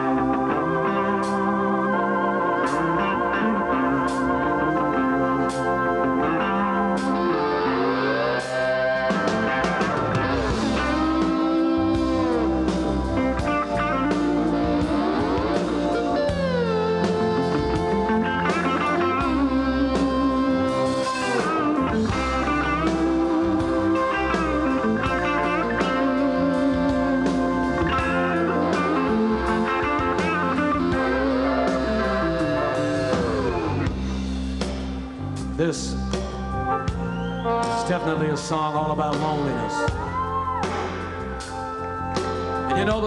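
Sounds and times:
rock band playing: 0:00.0 - 0:43.0
sliding electric guitar notes: 0:00.0 - 0:43.0.

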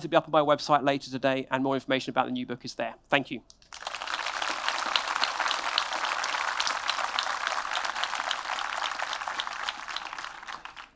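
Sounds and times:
audience applauding: 0:03.7 - 0:10.9.

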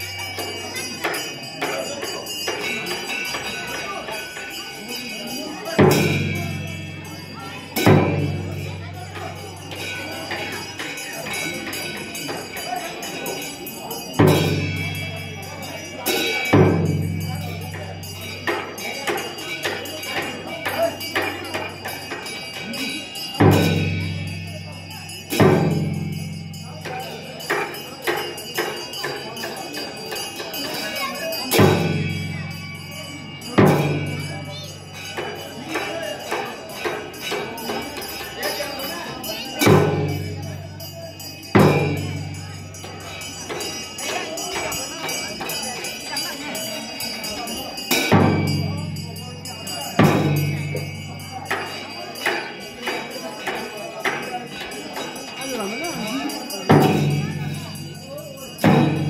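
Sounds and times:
heavy ringing drum strikes: 0:00.0 - 0:59.0
jingling: 0:00.0 - 0:59.0.

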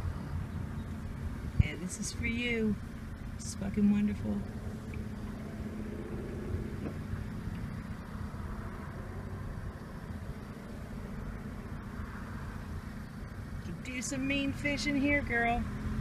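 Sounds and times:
car engine and tyre rumble: 0:00.0 - 0:16.0.

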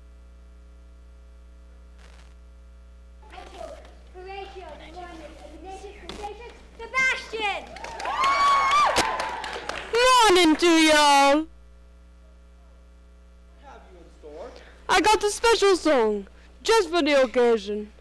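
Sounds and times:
people clapping: 0:06.4 - 0:11.0.

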